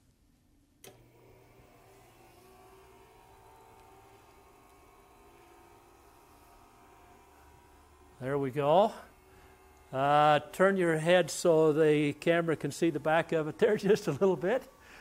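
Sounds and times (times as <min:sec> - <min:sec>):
generator motor running: 0:00.8 - 0:15.0.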